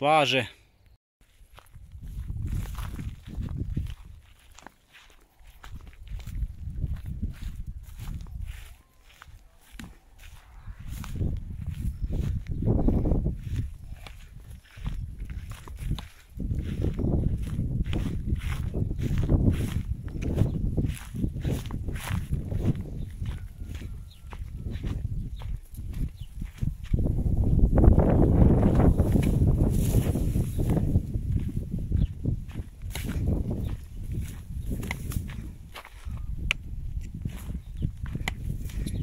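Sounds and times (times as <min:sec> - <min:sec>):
footsteps crunching dry grass: 0:01.2 - 0:39.0
wind rumbling on microphone: 0:01.3 - 0:39.0.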